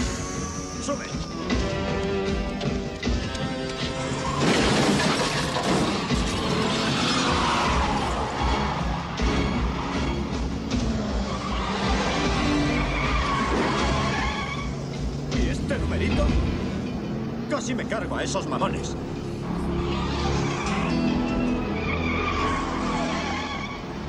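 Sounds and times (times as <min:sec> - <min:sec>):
dramatic action music: 0:00.0 - 0:24.0
loud crash: 0:04.2 - 0:07.7.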